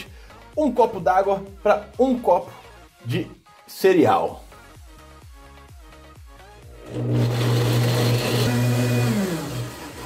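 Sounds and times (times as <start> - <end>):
blender running: 6.6 - 10.0.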